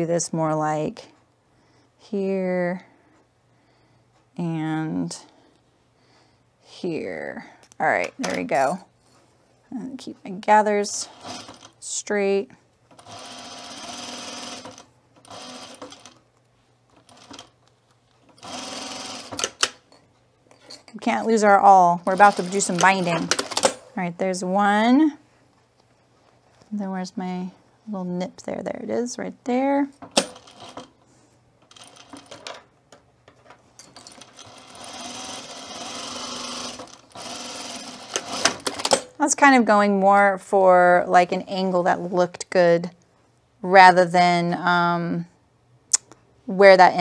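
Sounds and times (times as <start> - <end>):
sewing machine stitching: 10.9 - 11.9, 12.9 - 16.2, 17.0 - 17.5, 18.3 - 19.8, 22.0 - 23.8, 30.2 - 30.9, 31.7 - 32.5, 34.0 - 39.0.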